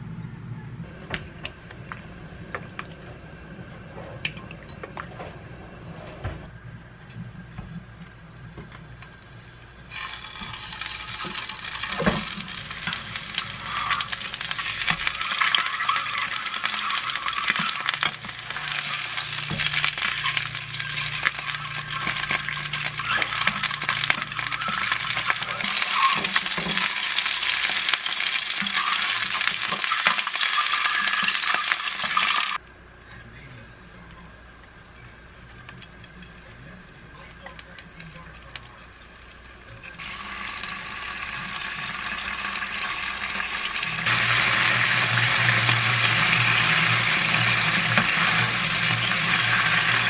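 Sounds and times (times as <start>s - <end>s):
food sizzling in oil: 9.9s - 32.6s, 38.2s - 50.0s.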